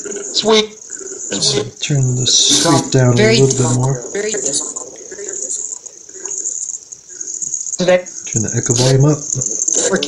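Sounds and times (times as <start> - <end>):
echoing chopped audio snippets: 0.0 - 10.0
steady high hiss: 0.0 - 10.0.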